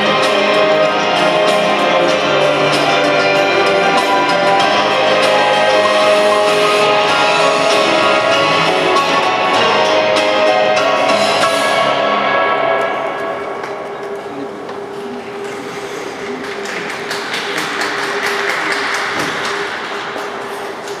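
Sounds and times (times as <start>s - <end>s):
figure skating program music: 0.0s - 14.9s, 16.2s - 21.0s
audience applause: 15.9s - 21.0s.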